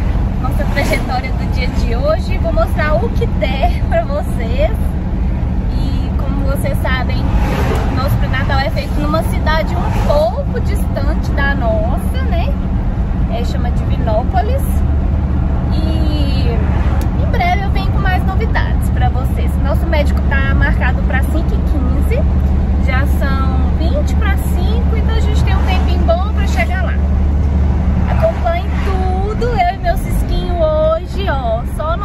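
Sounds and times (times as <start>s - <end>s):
car road and engine rumble: 0.0s - 32.0s.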